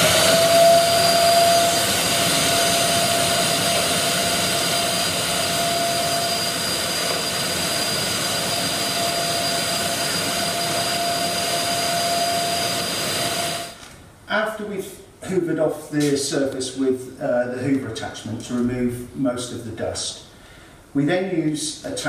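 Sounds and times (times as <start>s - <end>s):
vacuum cleaner running: 0.0s - 13.8s.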